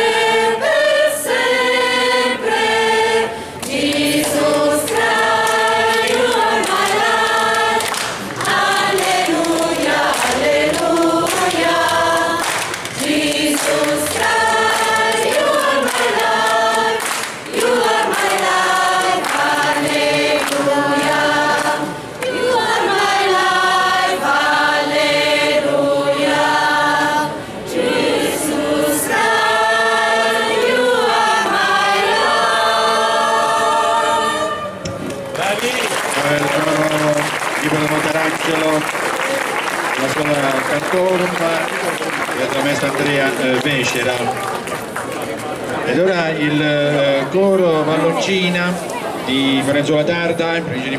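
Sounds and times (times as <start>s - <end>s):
choir singing unaccompanied: 0.0s - 41.4s.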